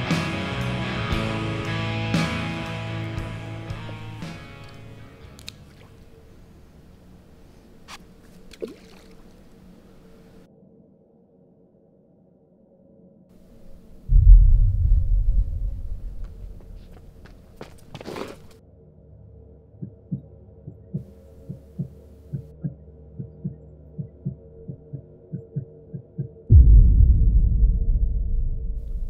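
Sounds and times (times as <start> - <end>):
low drone: 13.4 - 17.2, 26.5 - 29.0
whoosh: 14.1 - 16.9, 26.5 - 29.0
deep boom: 14.1 - 17.0, 26.5 - 29.0
heartbeat thumps: 14.1 - 17.3, 19.8 - 29.0.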